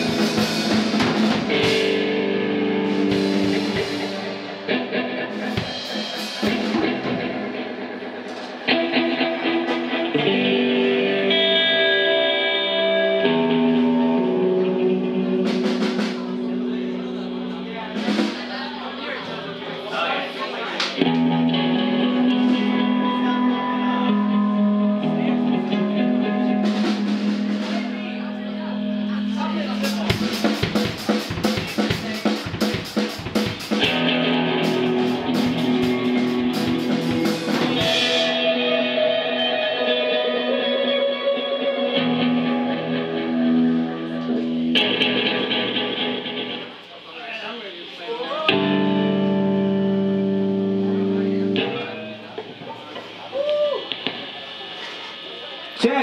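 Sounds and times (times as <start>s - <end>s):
drum hits and cymbals: 0.0s - 8.8s, 29.7s - 38.6s
electric guitar notes and chords: 0.0s - 47.0s, 47.8s - 56.0s.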